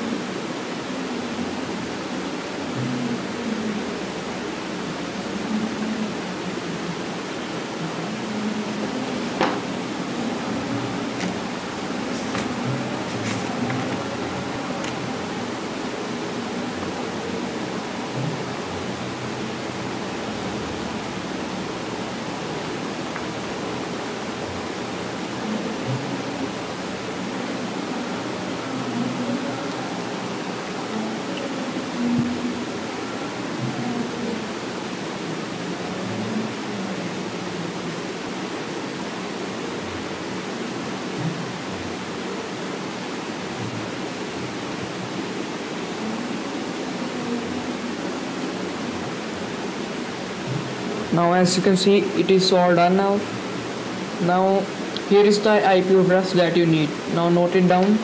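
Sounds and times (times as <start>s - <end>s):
microphone hiss: 0.0s - 58.0s.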